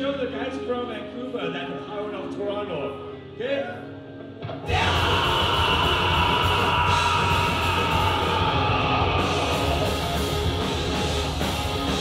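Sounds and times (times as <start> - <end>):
live rock band: 4.2 - 12.0
electric guitar: 4.3 - 12.0.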